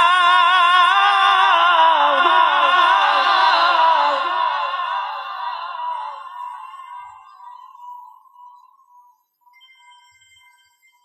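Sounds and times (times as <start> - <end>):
man reciting with echo: 0.0 - 7.0
faint steady ringing tones: 6.0 - 11.0.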